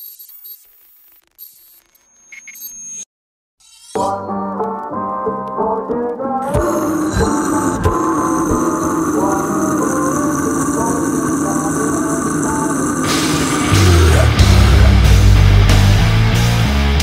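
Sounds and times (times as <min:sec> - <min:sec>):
atmospheric drone music: 0:06.4 - 0:16.9
heavy metal band: 0:06.5 - 0:17.0.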